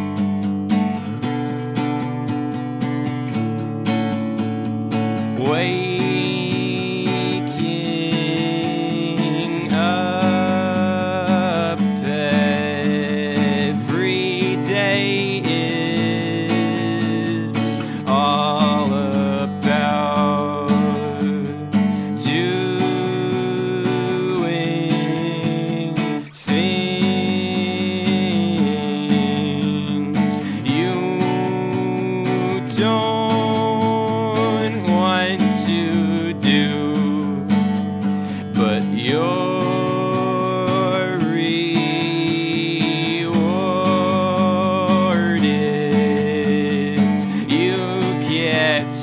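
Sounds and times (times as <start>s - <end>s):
guitar strummed: 0.0s - 49.0s.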